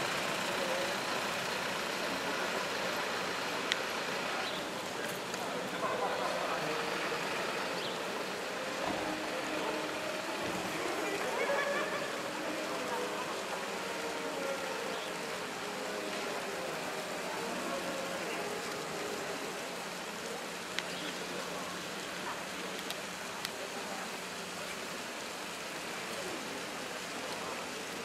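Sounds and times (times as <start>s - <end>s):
distant traffic: 0.0s - 24.5s
faint voices of passers-by: 0.0s - 28.0s.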